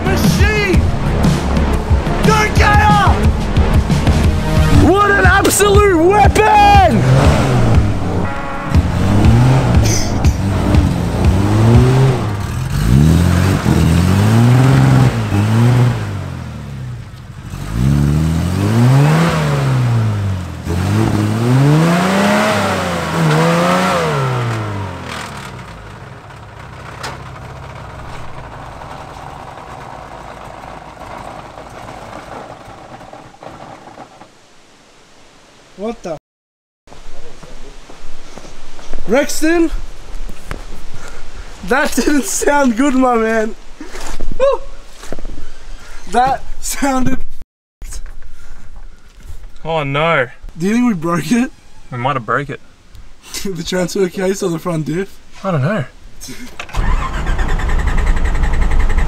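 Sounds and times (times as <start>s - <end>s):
off-road engine revving: 0.0s - 34.3s, 56.2s - 59.0s.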